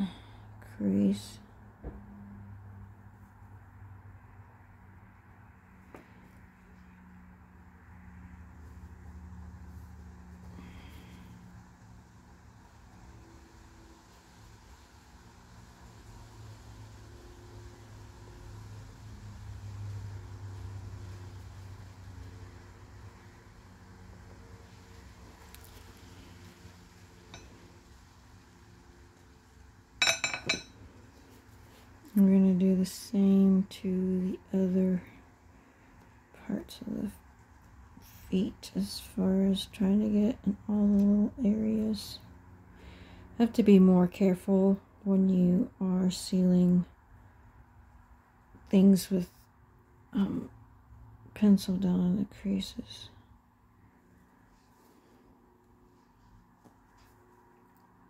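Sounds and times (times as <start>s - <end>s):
low steady hum: 0.0s - 58.0s
bright clink: 30.0s - 30.8s.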